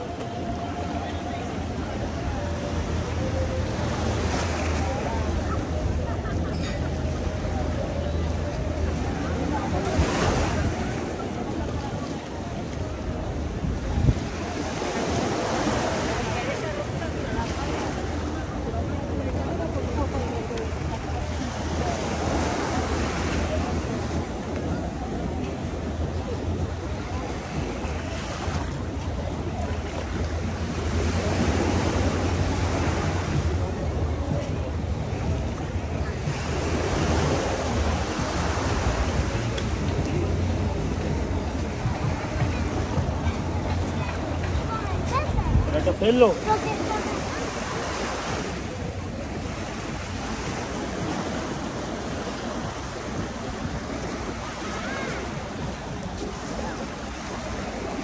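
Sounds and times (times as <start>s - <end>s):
faint voices: 0.0s - 58.0s
small waves washing onto shore: 0.0s - 58.0s
wind rumbling on microphone: 0.0s - 58.0s.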